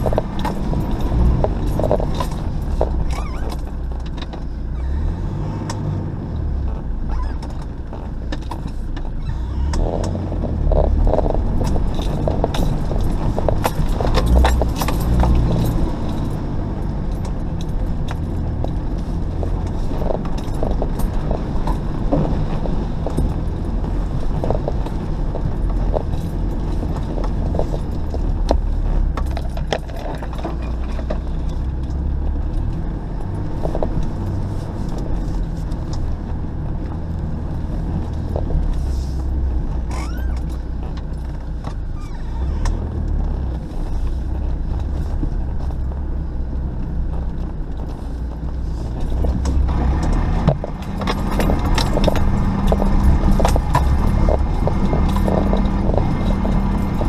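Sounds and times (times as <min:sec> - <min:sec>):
vehicle engine running low: 0:00.0 - 0:57.0
vehicle knocks and rattles: 0:00.0 - 0:57.0.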